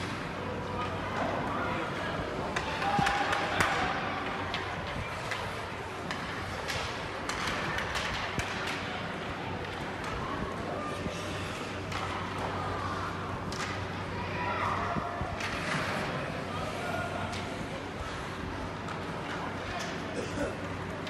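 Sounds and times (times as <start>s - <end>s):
murmur of spectators: 0.0s - 21.0s
hockey sticks and puck clacking: 2.4s - 14.0s, 15.4s - 21.0s.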